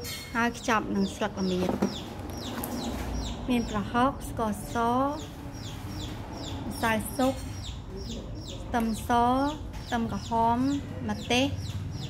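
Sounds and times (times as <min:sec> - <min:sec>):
chickens clucking: 0:00.7 - 0:12.0.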